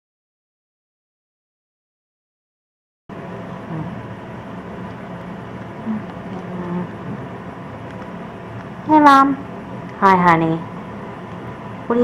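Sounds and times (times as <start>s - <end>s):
background hum: 3.1s - 12.0s.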